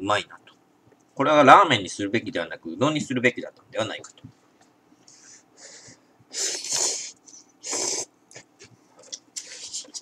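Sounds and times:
person slurping noodles: 0:06.4 - 0:08.1.

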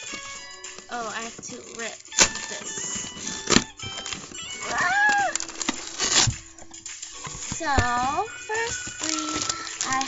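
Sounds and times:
paper envelope tearing: 0:00.0 - 0:06.5, 0:07.3 - 0:10.0.

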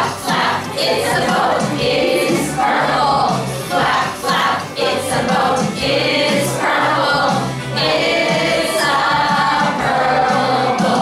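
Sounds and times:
children's song with voices singing: 0:00.0 - 0:11.0.

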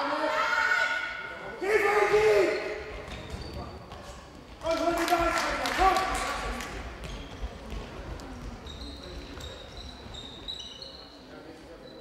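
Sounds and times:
voices echoing in hall: 0:00.0 - 0:12.0
shoes squeaking on court floor: 0:02.5 - 0:04.6, 0:06.8 - 0:12.0.

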